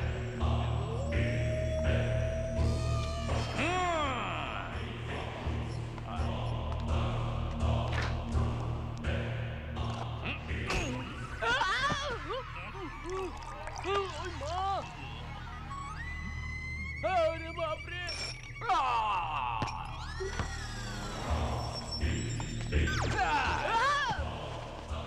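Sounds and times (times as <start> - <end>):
horror background score: 0.0 - 25.0
wordless vocal cries and groans: 0.0 - 25.0.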